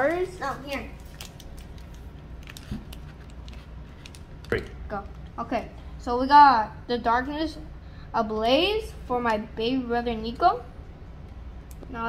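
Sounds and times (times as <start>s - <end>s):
plastic packaging clicks and crackles: 0.7s - 4.6s.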